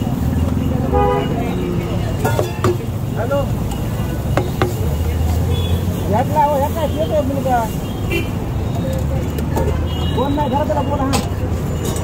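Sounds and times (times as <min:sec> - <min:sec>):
low rumble of traffic: 0:00.0 - 0:12.0
voices talking: 0:00.0 - 0:12.0.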